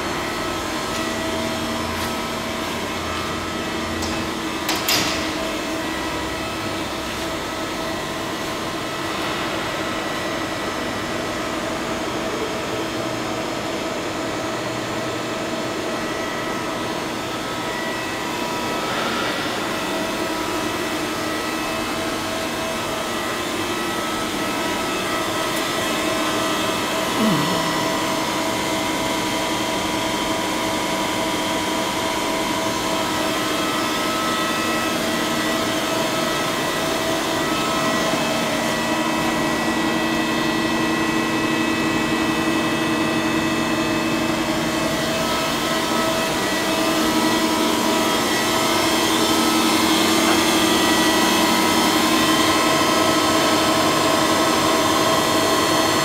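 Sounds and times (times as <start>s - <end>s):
factory machinery humming: 0.0s - 56.0s.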